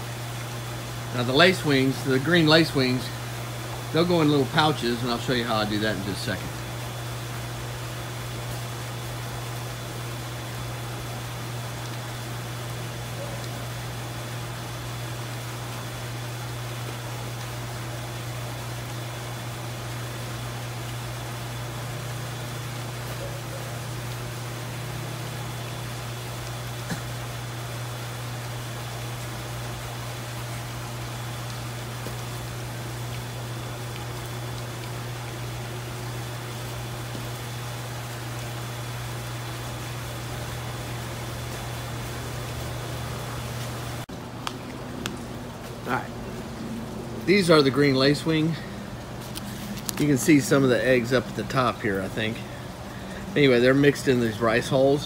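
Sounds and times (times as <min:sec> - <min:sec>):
electric motor hum: 0:13.6 - 0:44.0.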